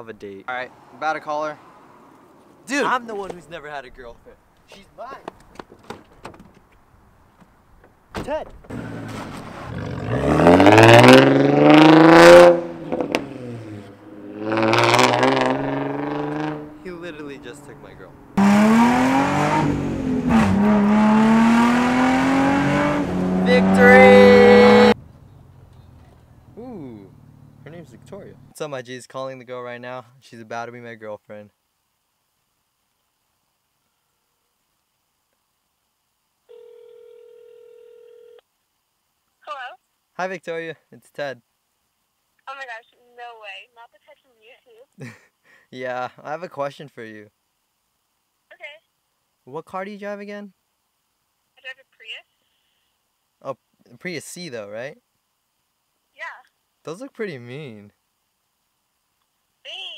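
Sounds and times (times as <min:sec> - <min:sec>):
car engine accelerating hard: 0:08.7 - 0:25.7
phone ringback tone: 0:36.5 - 0:38.4.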